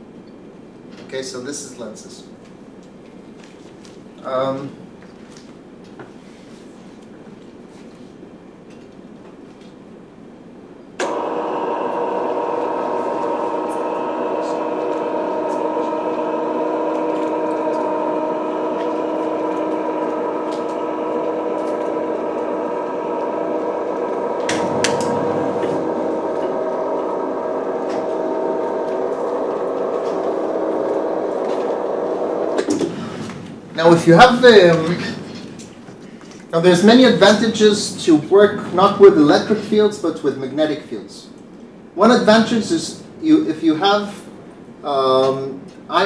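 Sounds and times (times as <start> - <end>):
projection screen motor humming: 11.0 - 40.2.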